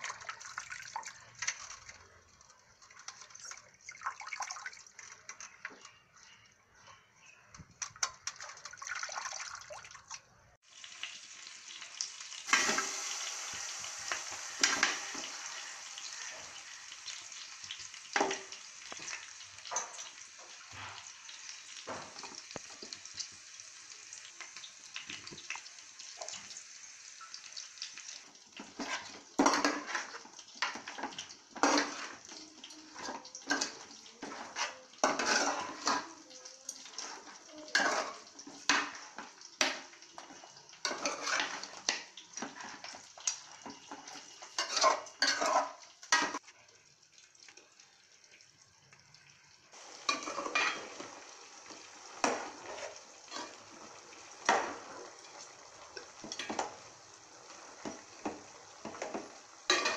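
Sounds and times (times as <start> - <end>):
food clattering in a steel pan: 28.6 - 36.2, 50.0 - 51.2, 55.9 - 56.8, 57.8 - 59.9.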